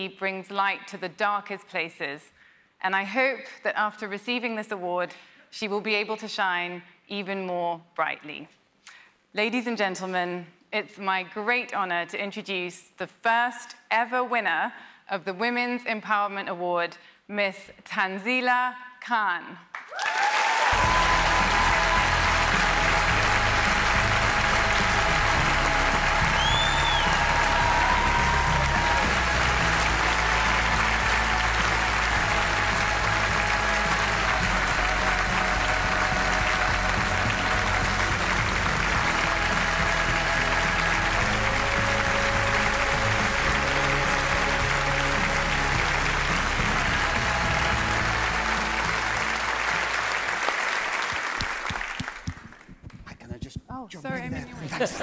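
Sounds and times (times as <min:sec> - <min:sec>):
audience applauding: 0:19.7 - 0:53.0
music with moving bass line: 0:20.8 - 0:49.2
high whistle: 0:26.3 - 0:27.2.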